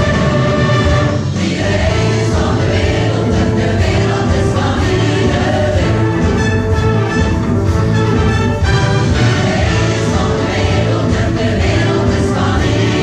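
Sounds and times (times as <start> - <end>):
choir singing with orchestra: 0.0 - 13.0.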